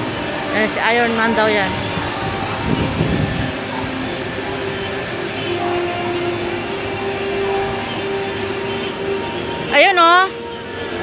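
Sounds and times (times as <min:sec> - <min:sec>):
steady rushing outdoor noise: 0:00.0 - 0:11.0.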